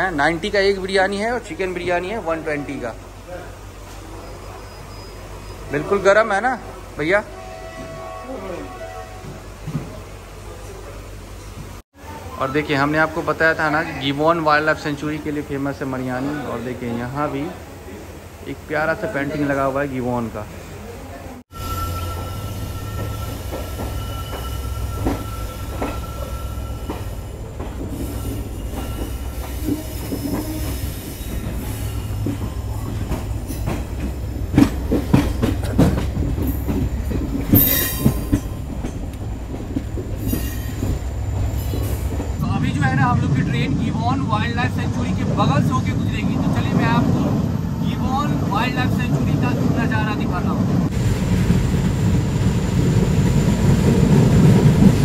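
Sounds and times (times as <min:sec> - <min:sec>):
train running rumble: 0:17.5 - 0:55.0.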